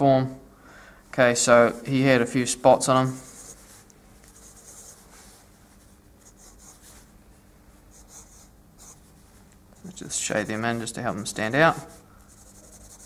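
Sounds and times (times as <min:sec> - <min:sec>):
faint steady hum: 0:00.0 - 0:13.0
pencil strokes on paper: 0:03.0 - 0:03.8, 0:04.4 - 0:07.1, 0:11.6 - 0:13.0.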